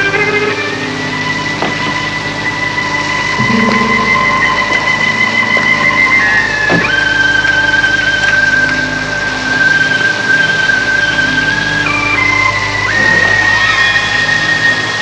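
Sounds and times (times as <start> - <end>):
eerie high held tones: 0.0 - 15.0
low sustained drone: 0.0 - 15.0.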